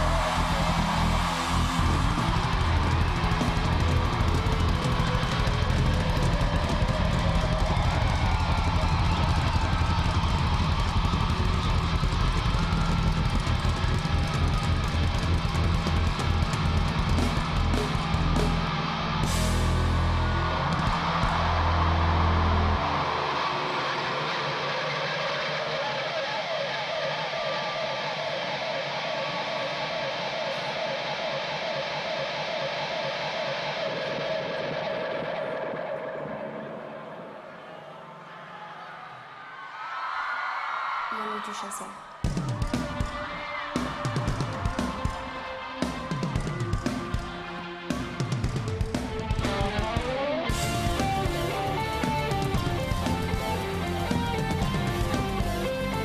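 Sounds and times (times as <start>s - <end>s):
live rock band playing: 0.0s - 36.8s, 42.3s - 56.0s
crowd noise: 0.0s - 56.0s.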